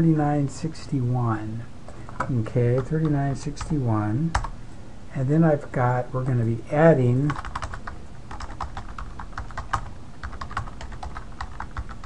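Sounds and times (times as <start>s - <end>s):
keyboard typing: 7.2s - 12.0s.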